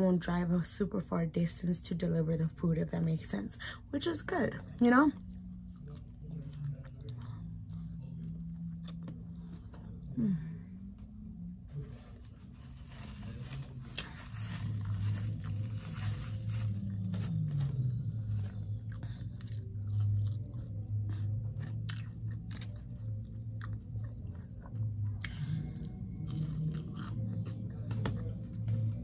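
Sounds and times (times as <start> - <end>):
person chewing crunchy food: 5.2 - 10.1, 12.2 - 29.0.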